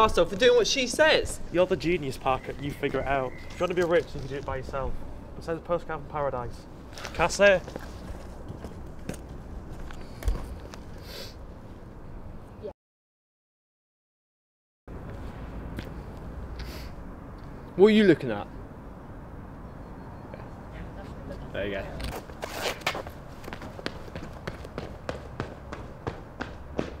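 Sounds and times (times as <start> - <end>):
footsteps on paved ground: 0.0 - 4.9, 6.8 - 11.1, 14.9 - 16.7, 21.8 - 27.0.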